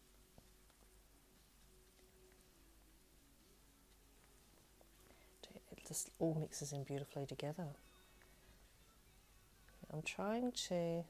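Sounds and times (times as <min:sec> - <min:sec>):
woman speaking softly: 0:05.4 - 0:07.8, 0:09.8 - 0:11.0.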